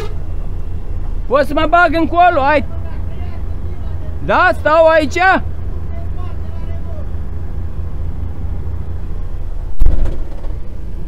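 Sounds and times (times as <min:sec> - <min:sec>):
truck diesel engine idling: 0:00.0 - 0:09.8
loud thump: 0:09.8 - 0:10.7.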